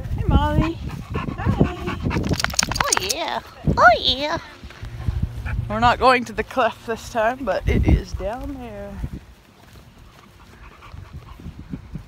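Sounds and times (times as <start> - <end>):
dog panting: 0.4 - 3.2, 10.0 - 12.0.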